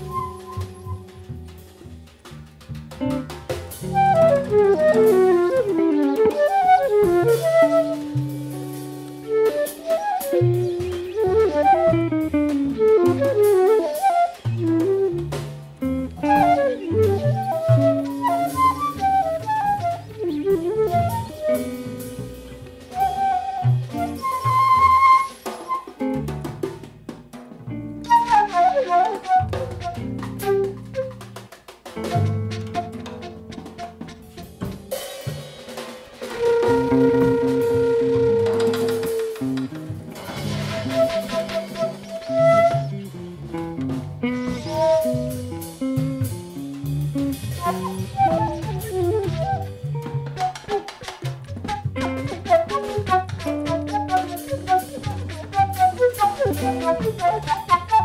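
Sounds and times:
flute melody: 0.0s - 1.6s, 3.1s - 26.3s, 27.9s - 35.2s, 36.2s - 58.0s
bass low notes: 0.0s - 9.4s, 39.4s - 50.3s
drum kit snare and rim hits: 0.0s - 58.0s.

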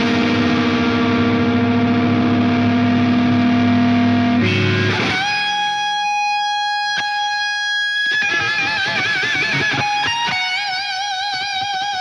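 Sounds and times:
distorted electric guitar note: 0.0s - 12.0s.

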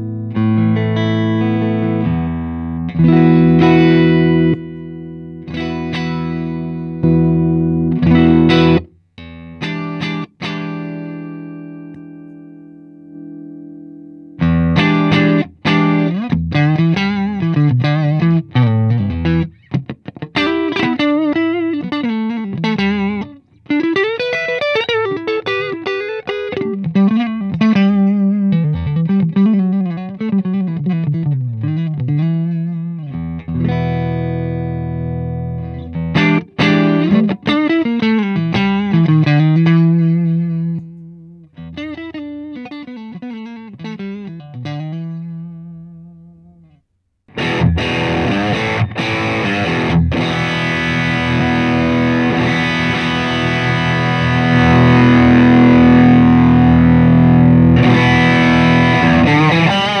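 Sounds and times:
distorted electric guitar: 0.0s - 60.0s
clean electric guitar licks: 14.4s - 60.0s.

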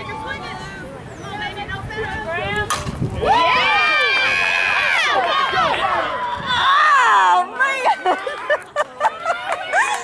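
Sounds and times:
spectators yelling and cheering: 2.0s - 10.0s.

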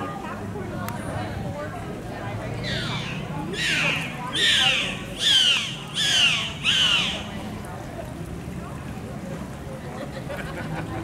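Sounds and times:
dolphin squawking calls: 2.6s - 7.4s.

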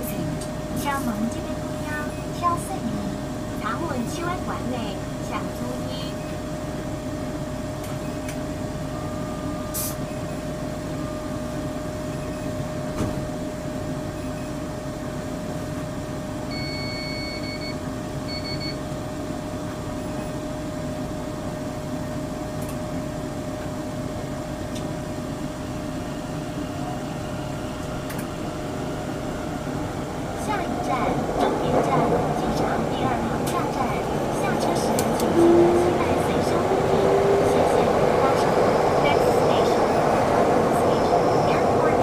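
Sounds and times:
train running noise: 0.0s - 14.2s, 20.5s - 42.0s
electrical hum and whine: 0.0s - 42.0s
electronic beep: 16.5s - 18.8s.

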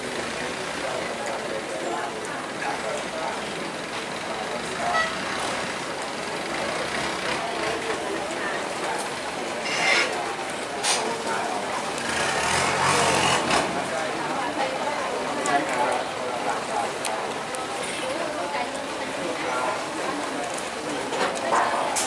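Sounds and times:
indistinct voices: 0.0s - 22.0s
motor noise: 11.9s - 14.1s.

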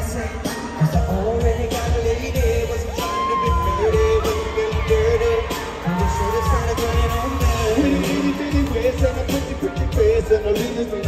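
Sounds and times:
heavy bass beat: 0.0s - 11.0s
loud live pop music: 0.0s - 11.0s
men singing into microphones: 0.0s - 11.0s.

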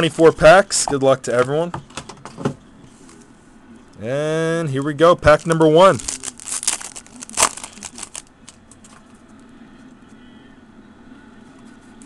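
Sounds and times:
foil wrapper crinkling: 4.8s - 9.0s
foil tearing: 5.2s - 8.3s
wrapper and cards rustling: 5.2s - 9.2s.

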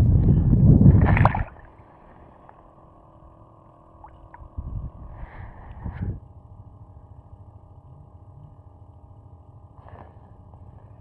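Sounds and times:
wind buffeting microphone: 0.0s - 1.6s, 4.4s - 6.4s.

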